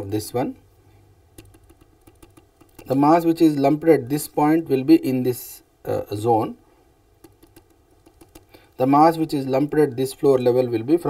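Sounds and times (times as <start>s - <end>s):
stylus tapping on screen: 1.3s - 3.0s, 7.2s - 8.8s.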